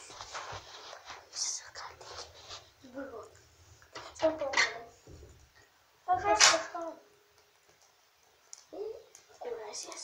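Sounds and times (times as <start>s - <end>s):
person whispering: 1.3s - 2.3s.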